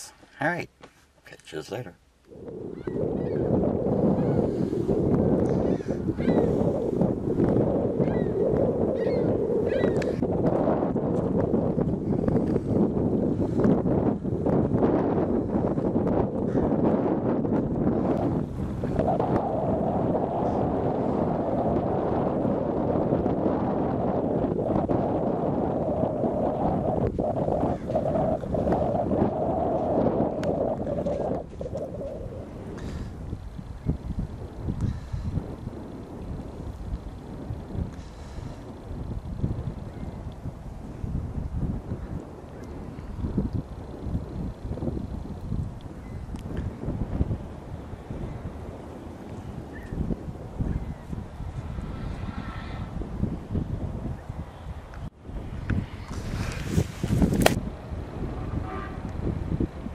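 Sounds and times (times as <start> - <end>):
wind buffeting microphone: 1.6 - 59.9.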